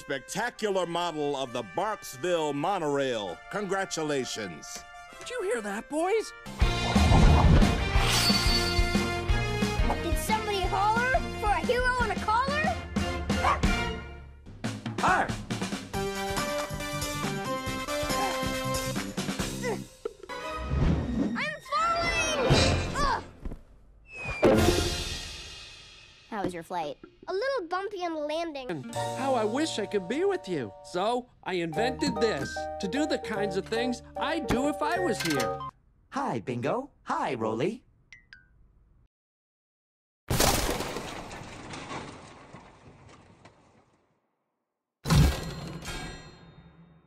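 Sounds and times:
cartoon puppy yelping: 13.4 - 13.8
cartoon music: 28.9 - 35.7.

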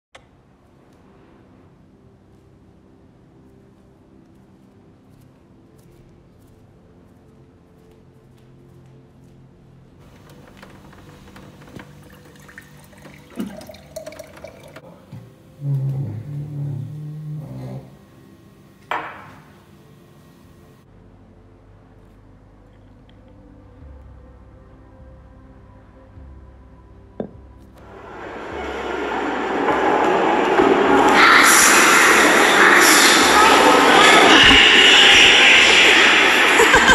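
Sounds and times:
water filling a glass: 10.3 - 15.1
rushing noise: 27.8 - 36.9.

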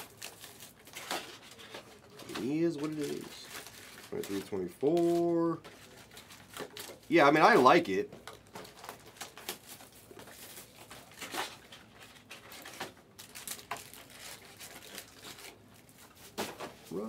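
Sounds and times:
packaging clicks and rustles: 0.0 - 16.8.

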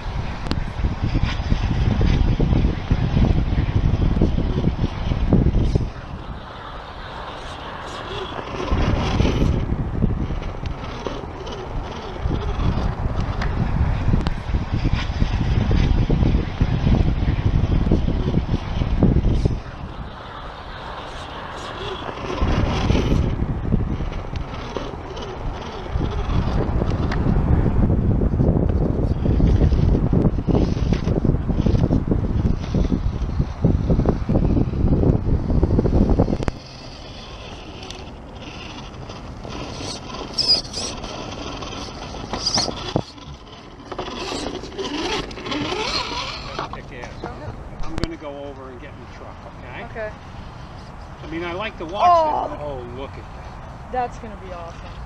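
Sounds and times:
rc crawler clicks and scrapes: 0.0 - 27.5, 28.6 - 34.9, 35.5 - 47.2
wind buffeting microphone: 0.0 - 55.0.

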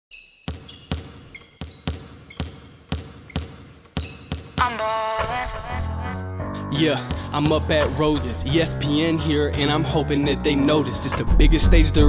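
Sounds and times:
shoe squeaks: 0.1 - 4.8
basketball bouncing: 0.4 - 5.4
rapping over a beat: 4.6 - 5.9, 6.6 - 12.0.

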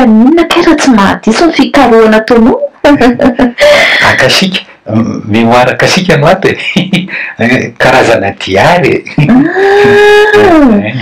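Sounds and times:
person's drawn-out vocal cry: 9.3 - 11.0.

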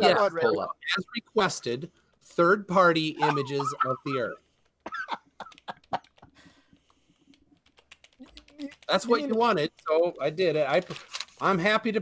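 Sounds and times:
typing on computer keyboard: 5.5 - 9.9.

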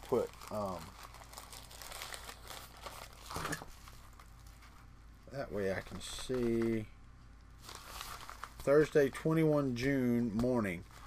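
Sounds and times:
packaging crinkling: 0.0 - 4.8, 7.6 - 8.9.

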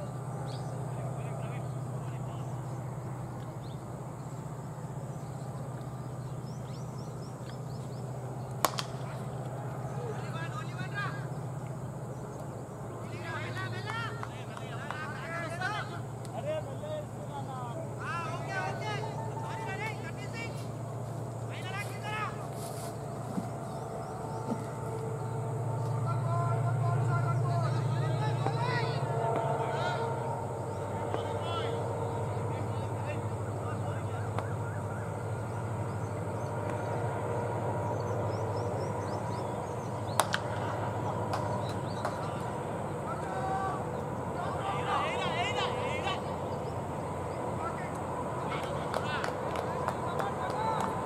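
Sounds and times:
distant players shouting: 0.0 - 51.0
low outdoor rumble: 0.0 - 51.0
small birds chirping: 0.0 - 51.0
steady low hum: 0.0 - 51.0.

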